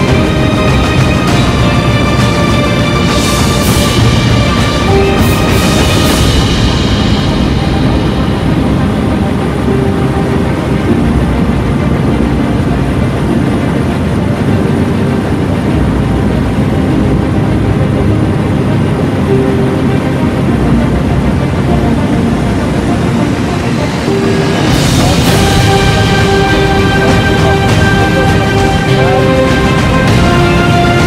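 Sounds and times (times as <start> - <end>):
light aircraft engine drone: 0.0 - 31.0.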